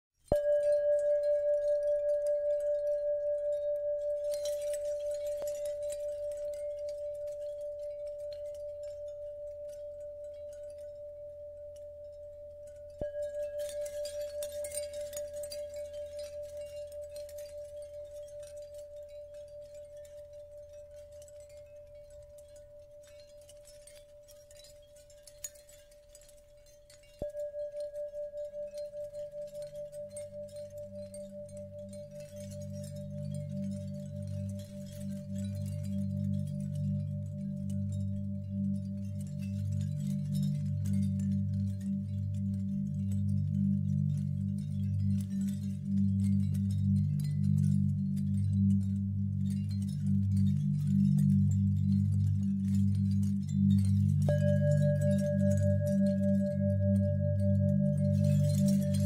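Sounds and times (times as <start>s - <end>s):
faint shimmer: 0.2s - 59.0s
singing bowl ringing: 0.2s - 59.0s
soft low drone: 27.2s - 59.0s.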